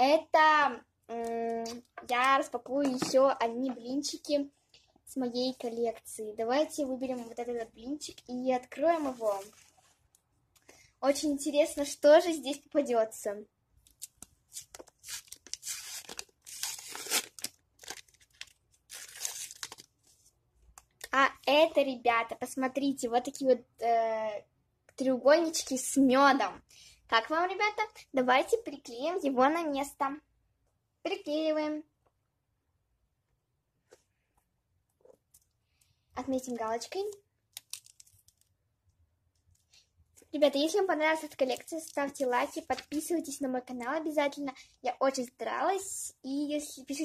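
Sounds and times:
paper rustling: 0:08.9 - 0:09.9
paper crinkling and tearing: 0:14.5 - 0:20.0.

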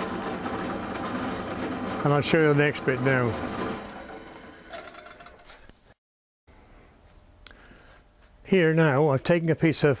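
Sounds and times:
pillar drill whining: 0:00.0 - 0:05.6
faint low workshop hum: 0:00.0 - 0:10.0.

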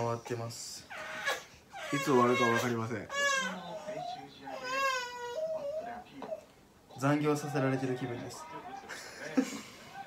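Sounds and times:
baby crying: 0:00.9 - 0:06.5.

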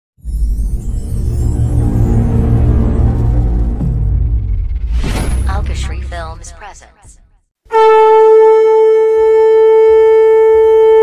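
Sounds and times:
conch shell blown: 0:07.7 - 0:11.0.

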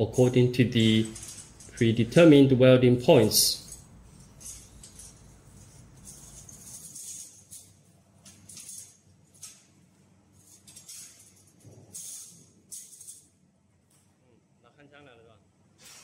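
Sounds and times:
metal strips clinking: 0:00.7 - 0:02.4, 0:03.1 - 0:13.4.

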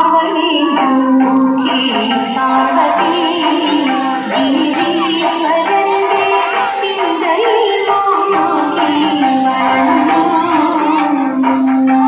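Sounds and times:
instrumental backing music: 0:00.0 - 0:12.0
women singing slow melody: 0:00.0 - 0:12.0.

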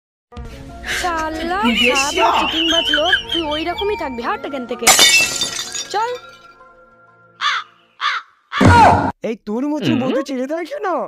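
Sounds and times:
crow cawing: 0:07.4 - 0:08.7.

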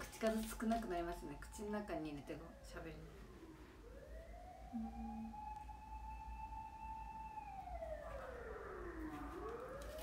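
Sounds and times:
faint siren wailing: 0:00.0 - 0:10.0.

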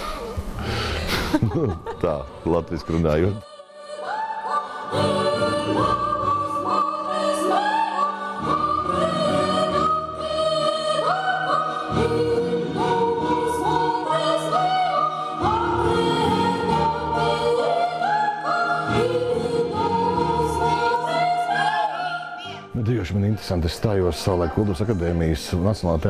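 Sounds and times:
choir singing: 0:00.0 - 0:26.0.

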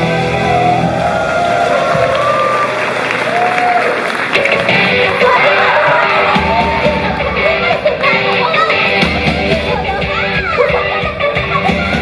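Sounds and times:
audience applauding and cheering: 0:00.0 - 0:09.6
pop song backing track: 0:04.4 - 0:12.0.

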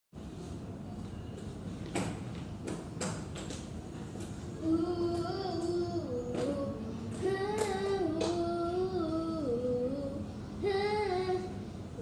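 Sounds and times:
girl singing unaccompanied: 0:04.5 - 0:12.0.

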